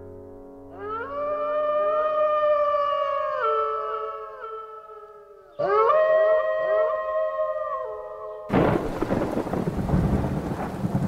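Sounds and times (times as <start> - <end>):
wolves howling in chorus: 0.8 - 8.5.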